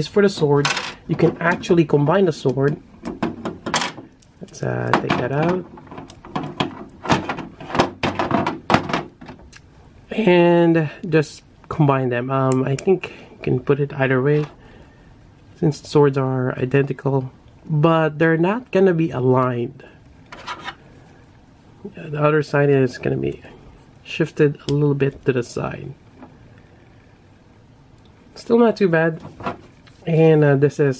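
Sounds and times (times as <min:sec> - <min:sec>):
plastic parts scraping: 0:20.3 - 0:21.2.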